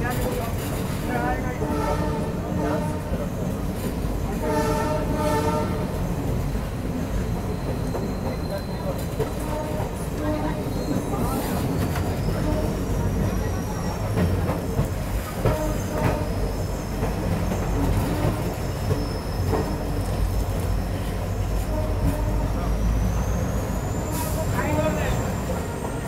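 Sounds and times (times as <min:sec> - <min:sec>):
train rumble with wheel clatter: 0:00.0 - 0:26.0.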